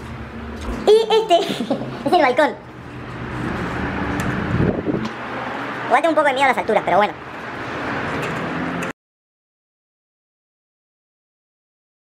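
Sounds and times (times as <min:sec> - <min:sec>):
city background noise: 0:00.0 - 0:09.0
wind rumbling on microphone: 0:03.5 - 0:05.3.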